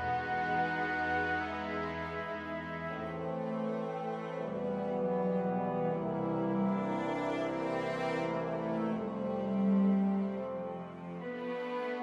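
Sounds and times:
orchestral music with horns: 0.0s - 12.0s.

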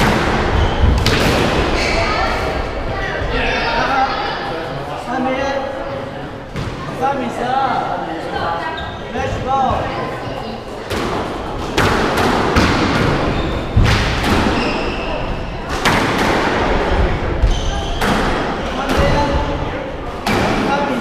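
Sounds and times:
voices: 0.0s - 21.0s
squash ball thuds: 10.9s - 14.6s.

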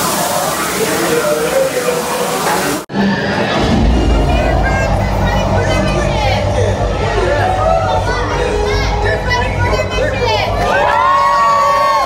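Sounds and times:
people talking: 0.0s - 11.1s
waterfall rushing: 0.0s - 12.0s
music: 2.9s - 12.0s
steady low rumble: 3.2s - 11.5s.

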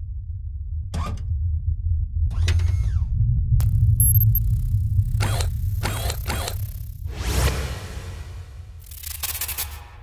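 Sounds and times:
deep bass rumble: 0.0s - 8.8s
mechanical sound effects: 3.6s - 10.0s
whoosh: 7.0s - 8.9s
glitchy crackle: 8.2s - 10.0s.

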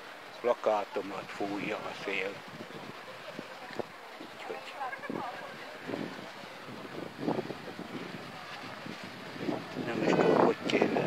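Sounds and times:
faint voices: 0.0s - 11.0s
wind gusts on microphone: 0.0s - 11.0s.

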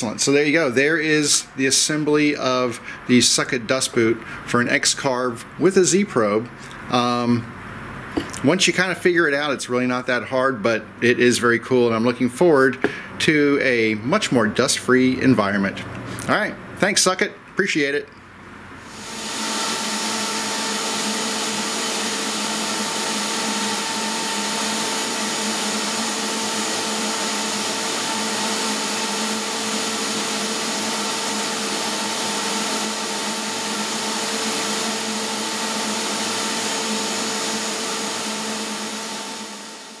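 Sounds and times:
shop vacuum running: 0.0s - 7.6s, 18.7s - 40.0s
router spindle whine: 18.9s - 40.0s.

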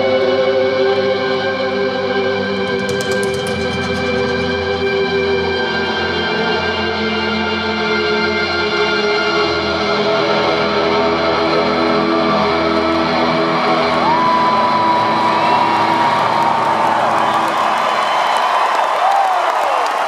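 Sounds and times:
crowd cheering and whooping: 13.5s - 20.0s.

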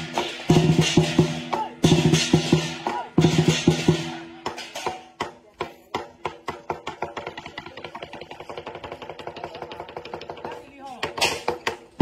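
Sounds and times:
fast percussion roll: 0.0s - 12.0s.

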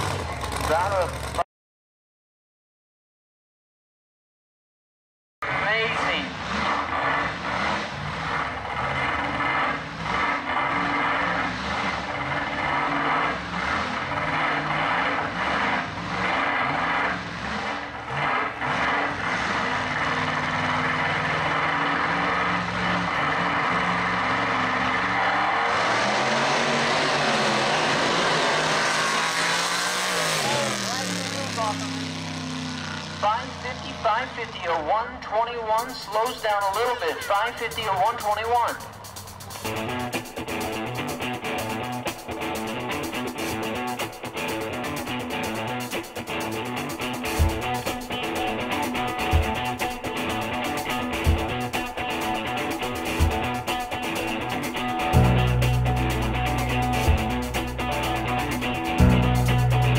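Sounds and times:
drag car engine running: 0.0s - 1.4s, 5.4s - 59.9s.

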